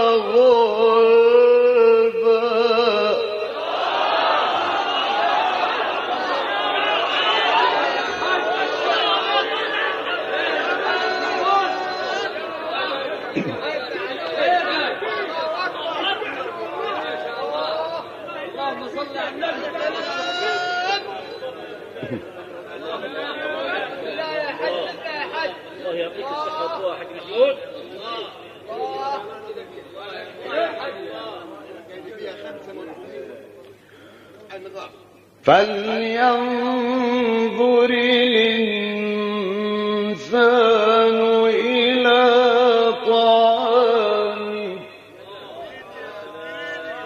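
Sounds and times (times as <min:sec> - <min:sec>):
crowd calling out and chattering: 0:00.0 - 0:47.0.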